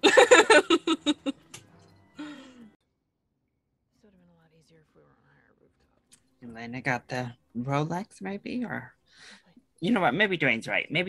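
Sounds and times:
person laughing: 0.0 - 1.5
person sighing: 2.2 - 2.7.

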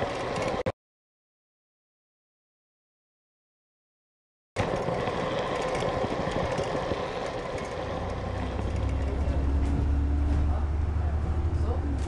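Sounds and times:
bus engine rumbling: 4.6 - 12.0
street traffic: 4.6 - 12.0.

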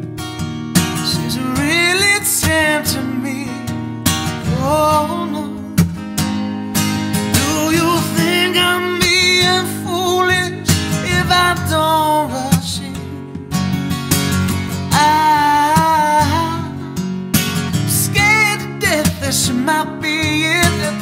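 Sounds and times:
acoustic guitar strumming: 0.0 - 21.0
man singing: 1.0 - 6.0, 7.2 - 13.4, 14.8 - 17.0, 17.7 - 21.0.

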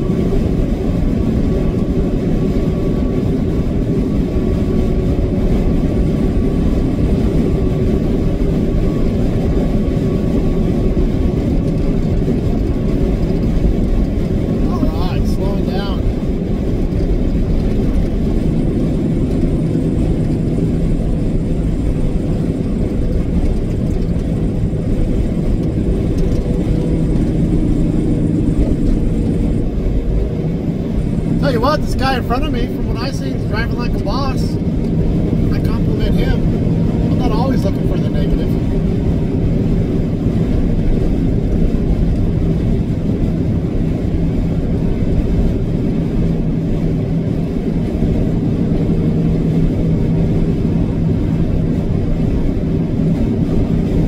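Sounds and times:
constant low hum: 0.0 - 54.0
road noise inside cab: 0.0 - 54.0
truck diesel engine drone: 0.0 - 54.0.

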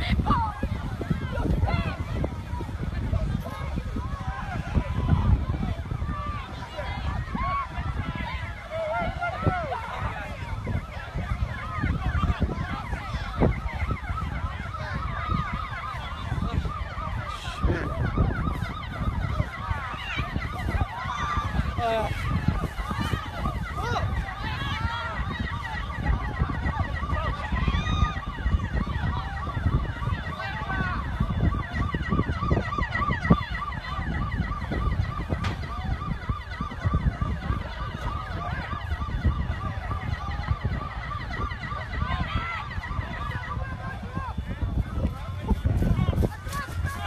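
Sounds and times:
emergency sirens yelping: 0.0 - 47.0
wind buffeting microphone: 0.0 - 47.0.

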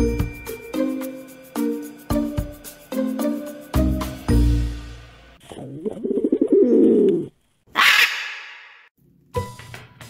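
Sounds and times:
dove cooing: 5.8 - 7.3.

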